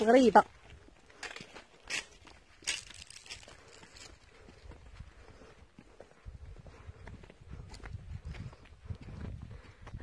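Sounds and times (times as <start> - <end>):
footsteps on bare rock: 0.0 - 10.0.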